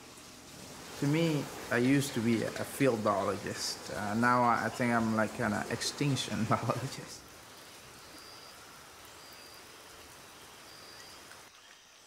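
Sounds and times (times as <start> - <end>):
hiss like light rain: 0.0 - 12.0.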